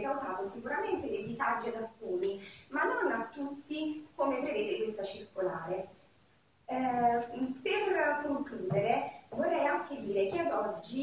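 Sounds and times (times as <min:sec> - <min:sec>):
woman talking: 0:00.0 - 0:05.9, 0:06.7 - 0:11.0.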